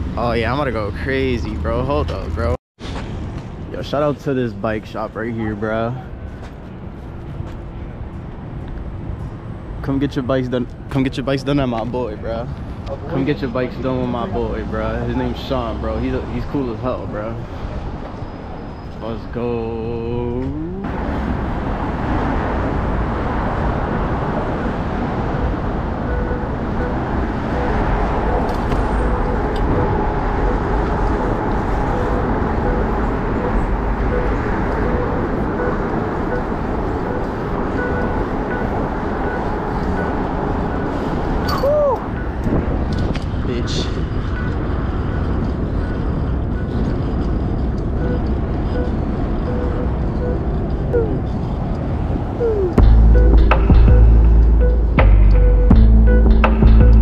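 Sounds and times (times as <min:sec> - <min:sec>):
road noise: 0:00.0 - 0:57.0
traffic: 0:00.0 - 0:57.0
brief squeal: 0:18.2 - 0:19.0, 0:41.4 - 0:42.0
wind buffeting microphone: 0:20.9 - 0:54.2.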